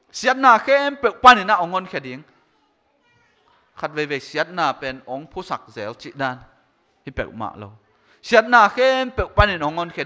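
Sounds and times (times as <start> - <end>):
man preaching into microphone: 0.0 - 2.3, 3.7 - 10.0
faint child's voice: 2.2 - 3.8.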